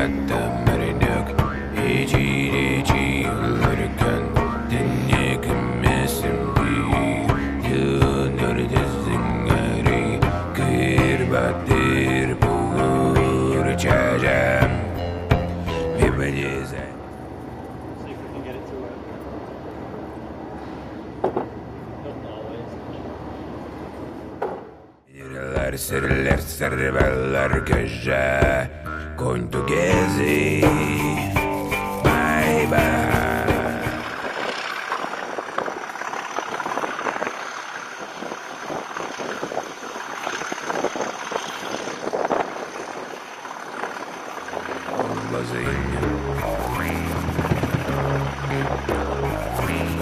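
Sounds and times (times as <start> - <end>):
distant voices: 0.0 - 24.1, 25.1 - 50.0
train rumbling at platform: 0.0 - 50.0
wind rushing over microphone: 30.3 - 50.0
train rattling and clatter: 33.7 - 45.6.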